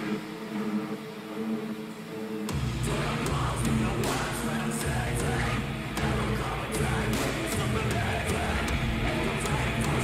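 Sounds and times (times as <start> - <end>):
metalcore band playing: 2.5 - 10.0.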